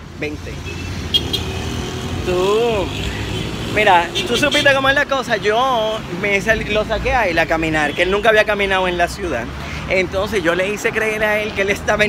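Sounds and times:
vehicle engine rumbling: 0:00.0 - 0:12.0.

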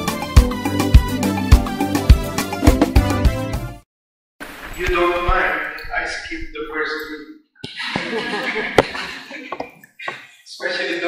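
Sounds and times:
person speaking: 0:04.7 - 0:07.4.

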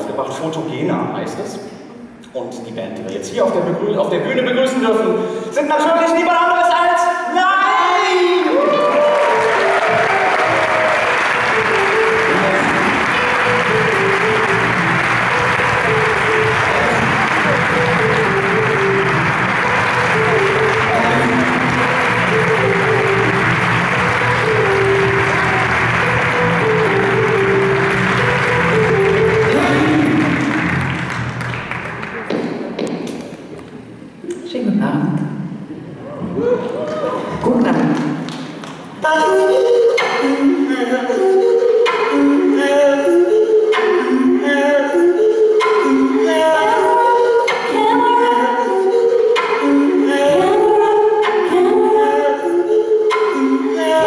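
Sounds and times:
audience applauding: 0:08.3 - 0:32.8, 0:36.6 - 0:39.0
music with repeating melody: 0:09.1 - 0:32.2, 0:39.2 - 0:54.0.

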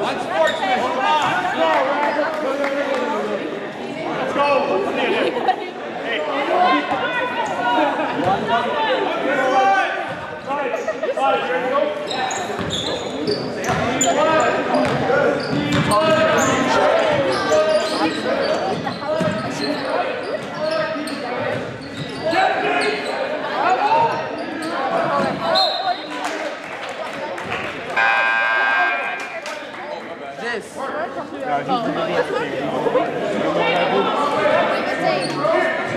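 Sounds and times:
crowd and player voices echoing: 0:00.0 - 0:35.9
basketball bouncing on court: 0:14.8 - 0:15.0.

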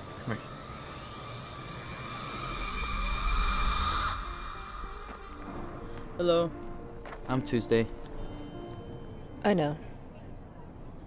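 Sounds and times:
deep rumble: 0:00.0 - 0:07.0
drone with rising tones: 0:00.0 - 0:07.0.

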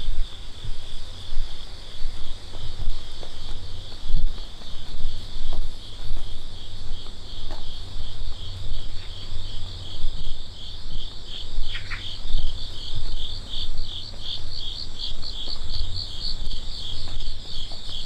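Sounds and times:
footsteps on paving stones: 0:00.0 - 0:10.5, 0:12.4 - 0:18.0
insects chirping: 0:00.0 - 0:18.0.

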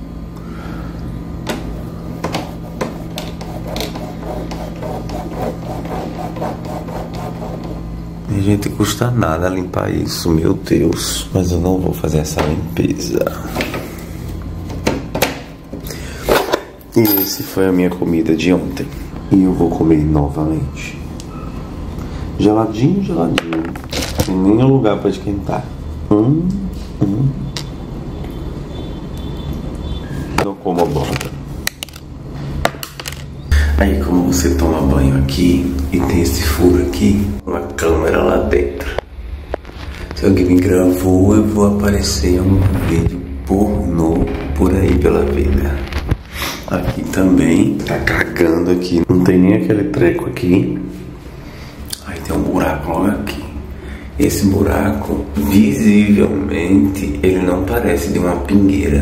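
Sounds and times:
steady low hum: 0:00.0 - 0:30.6, 0:33.4 - 0:59.0
finger scratching plastic filter screen: 0:02.3 - 0:07.9.

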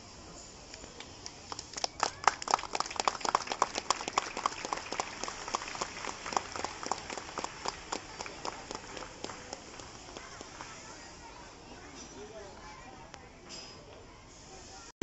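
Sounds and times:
people clapping: 0:00.7 - 0:10.9.

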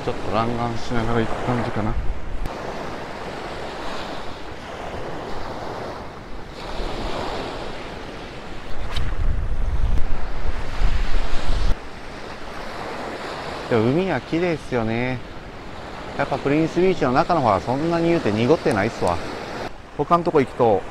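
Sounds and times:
wind on microphone: 0:00.0 - 0:13.6
surf washing onto sand: 0:00.0 - 0:20.9.

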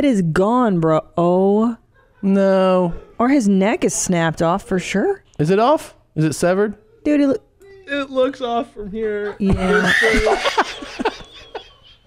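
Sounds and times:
people laughing hard: 0:09.5 - 0:12.0.

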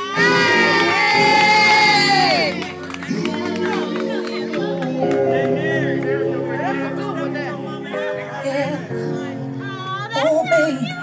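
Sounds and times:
crowd cheering: 0:00.0 - 0:06.2.

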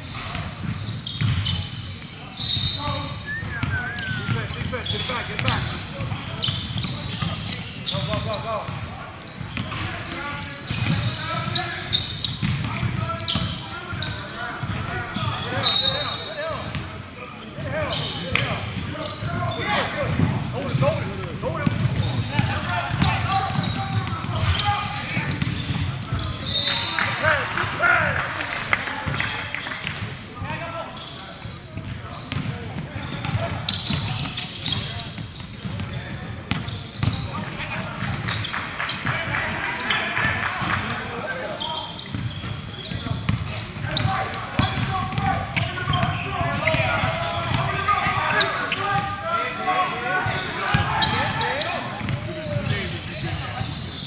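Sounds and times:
sneaker squeaks: 0:00.0 - 0:54.0
voices echoing in a hall: 0:00.0 - 0:54.0.

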